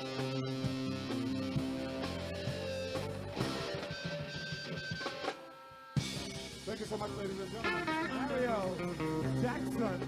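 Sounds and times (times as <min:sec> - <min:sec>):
live band music with guitar: 0:00.0 - 0:10.0.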